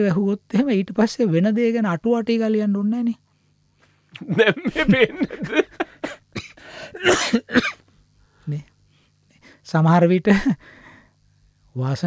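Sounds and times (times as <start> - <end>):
man coughing: 4.2 - 7.8
throat clearing: 6.0 - 7.8.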